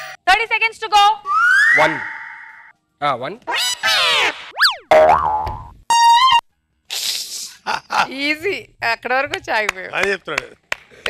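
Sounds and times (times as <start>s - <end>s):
springy cartoon boing: 3.5s - 6.3s.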